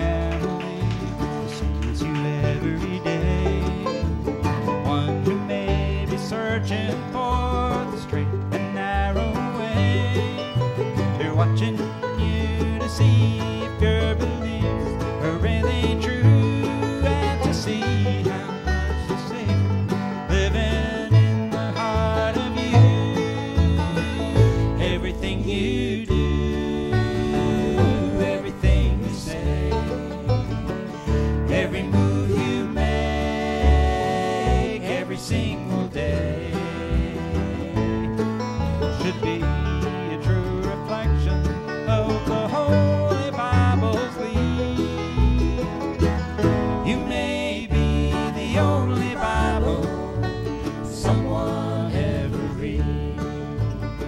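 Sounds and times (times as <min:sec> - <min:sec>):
banjo and guitar picking: 0:00.0 - 0:54.0
bass line: 0:00.0 - 0:54.0.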